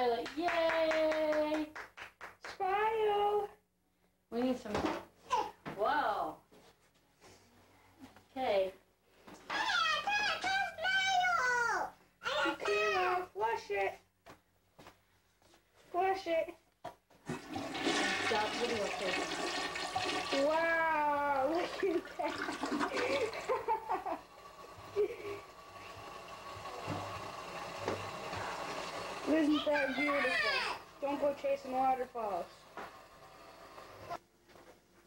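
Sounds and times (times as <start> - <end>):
toilet flushing: 17.2 - 34.2.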